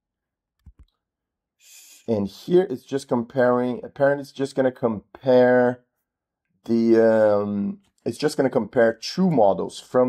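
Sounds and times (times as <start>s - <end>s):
computer mouse clicks: 0.6s - 1.0s.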